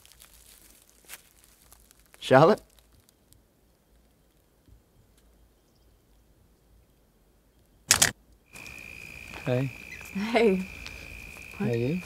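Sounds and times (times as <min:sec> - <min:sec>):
quiet outdoor ambience: 0:00.0 - 0:12.0.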